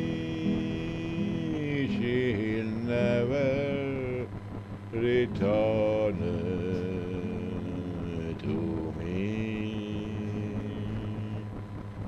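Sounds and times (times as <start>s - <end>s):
man singing long notes: 0.0s - 11.6s
acoustic guitar accompaniment: 0.0s - 12.0s.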